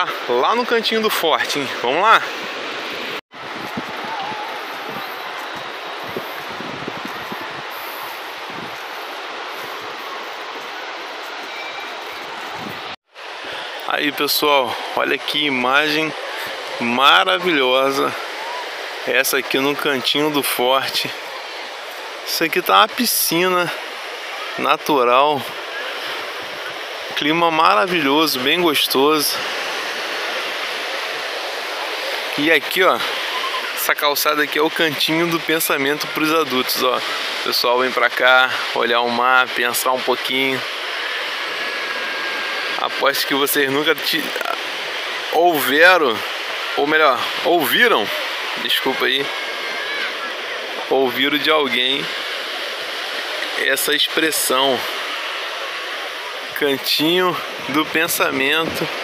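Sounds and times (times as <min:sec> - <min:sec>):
ocean surf on a beach: 0:00.0 - 0:59.0
wind gusts on microphone: 0:01.7 - 0:13.8.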